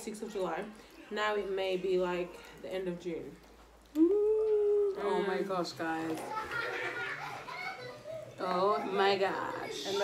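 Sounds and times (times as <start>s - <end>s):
quiet overlapping voices talking: 0.0s - 10.0s.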